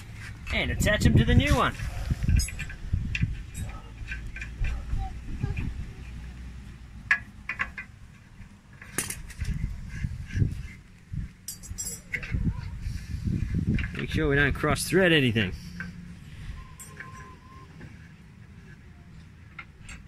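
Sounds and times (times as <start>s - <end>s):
constant low rumble: 0.0s - 20.0s.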